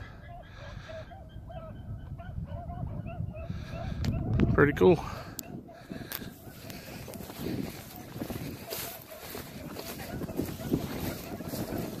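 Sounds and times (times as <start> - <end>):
wind buffeting microphone: 0.0 - 12.0
footsteps through dry grass: 5.8 - 12.0.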